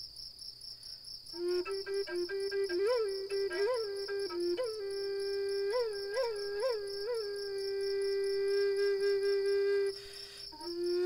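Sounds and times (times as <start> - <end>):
crickets trilling: 0.0 - 11.0
flute playing: 1.4 - 11.0.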